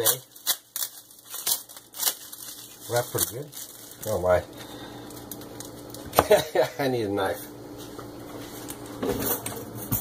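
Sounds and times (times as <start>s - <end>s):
paper and plastic wrapping crinkling: 0.0s - 6.1s.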